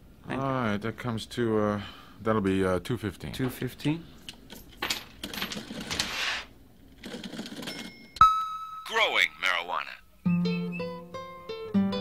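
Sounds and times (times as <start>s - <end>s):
coins clinking: 4.2s - 6.2s, 7.1s - 8.2s.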